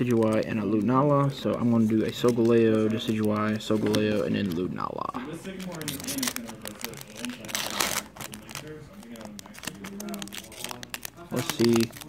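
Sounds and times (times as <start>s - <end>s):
foil wrapper crinkling: 0.0s - 12.0s
wrapper ripping: 5.3s - 12.0s.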